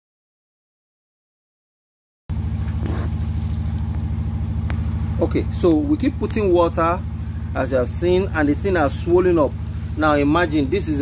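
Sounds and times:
engine idling: 2.3 - 11.0.

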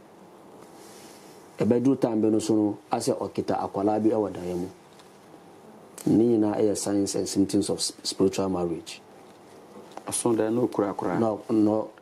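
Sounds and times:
faint room hiss: 0.0 - 12.0
man speaking: 1.6 - 4.8, 6.0 - 9.1, 10.0 - 12.0.

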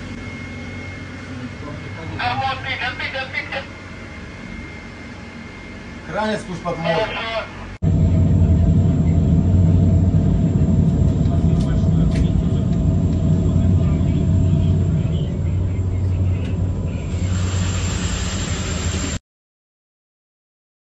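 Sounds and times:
boat engines droning: 0.0 - 19.2
broad hiss: 17.1 - 19.2.

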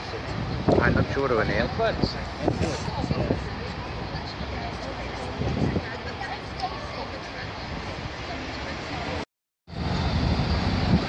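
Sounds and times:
people talking indistinctly: 0.0 - 9.2.

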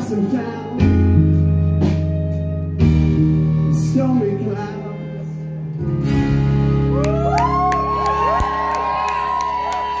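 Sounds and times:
audience cheering and whooping: 6.8 - 10.0.

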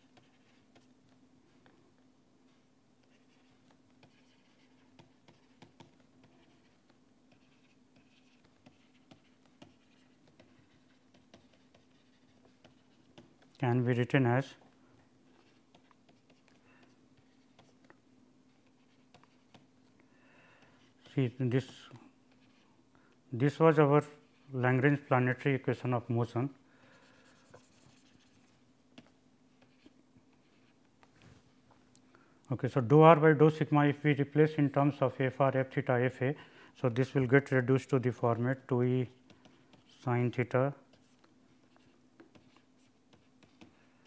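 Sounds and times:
stylus scratching on pen tablet: 0.0 - 1.0, 3.0 - 13.6, 15.3 - 17.9, 18.5 - 19.7, 27.0 - 30.8, 39.1 - 43.8
faint steady hum: 0.0 - 44.0.

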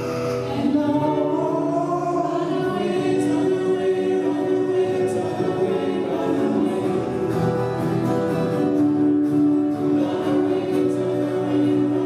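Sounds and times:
acoustic guitar: 0.0 - 12.0
voices singing together: 0.0 - 12.0.

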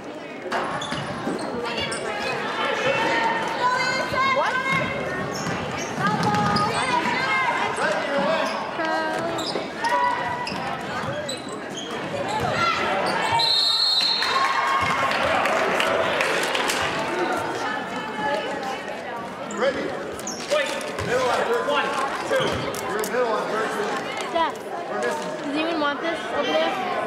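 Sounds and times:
sneakers squeaking: 0.5 - 14.2, 19.4 - 23.0
players and crowd calling out: 0.5 - 27.0
basketball bouncing on hardwood: 4.7 - 6.6
shrill referee whistle: 13.2 - 14.4.

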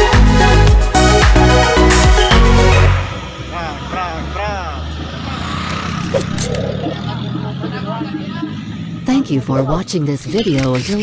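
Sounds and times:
street noise: 0.0 - 11.0
scooter engine running: 3.1 - 11.0
men calling out: 3.4 - 9.7.

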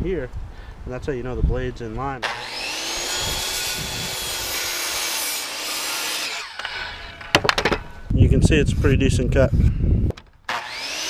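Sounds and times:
circular saw cutting wood: 2.2 - 7.6, 10.5 - 11.0.

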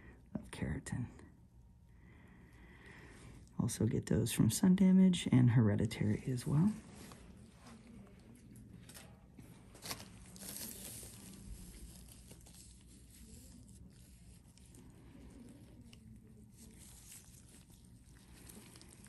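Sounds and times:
gloved hands rustling gauze: 8.9 - 19.0.

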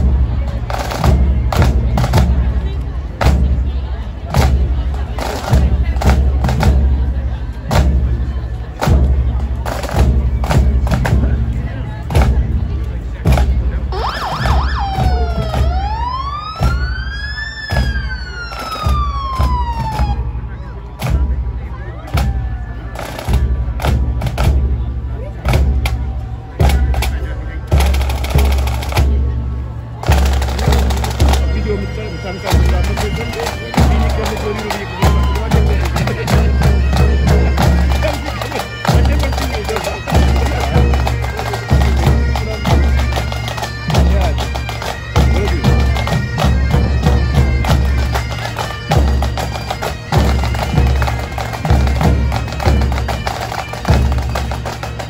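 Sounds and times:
bass drum beat: 0.0 - 18.2
drum corps playing marching cadence: 0.0 - 55.0
siren wailing: 13.9 - 20.4.

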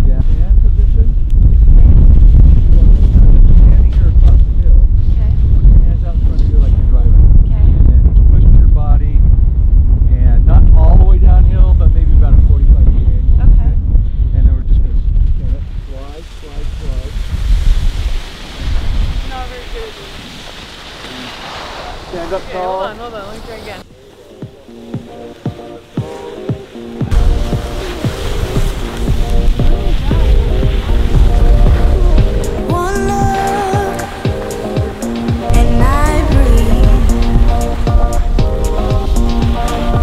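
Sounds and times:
wind buffeting microphone: 0.0 - 40.0
steady hiss: 15.8 - 40.0
faint voices: 21.0 - 37.1.

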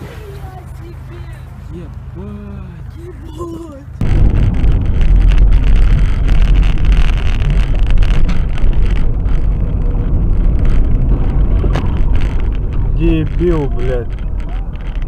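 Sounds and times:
car rumbling with road noise: 0.0 - 15.0
wind noise: 4.0 - 15.0.

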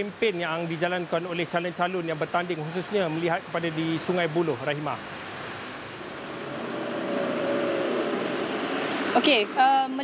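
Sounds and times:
rushing background noise: 0.0 - 10.0.

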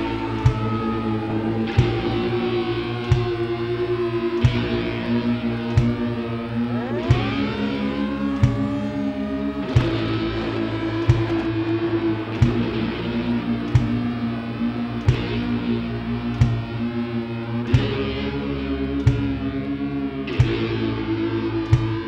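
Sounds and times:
bass guitar: 0.0 - 22.0
electric guitar: 0.0 - 22.0
guitar notes sliding up: 0.0 - 22.0.

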